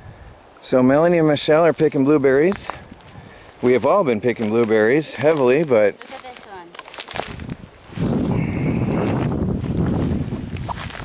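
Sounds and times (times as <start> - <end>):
pushing through bushes and grass: 1.3 - 11.0.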